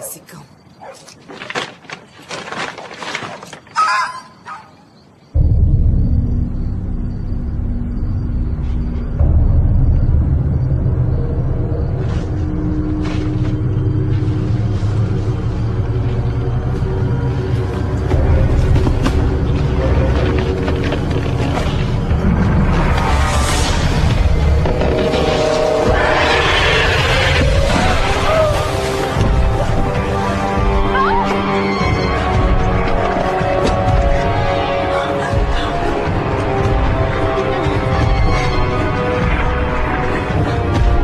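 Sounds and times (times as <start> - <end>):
low rumbling drone: 5.4 - 30.9.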